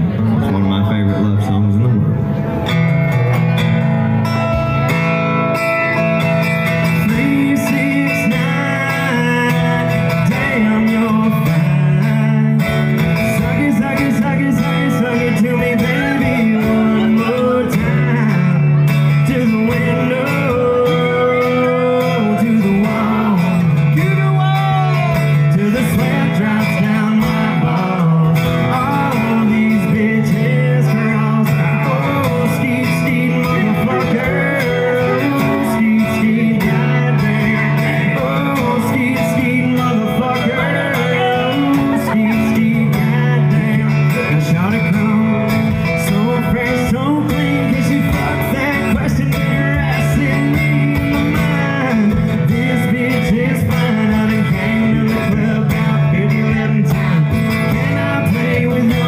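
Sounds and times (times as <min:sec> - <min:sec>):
acoustic guitars playing: 0:00.0 - 0:59.0
man singing: 0:05.8 - 0:59.0.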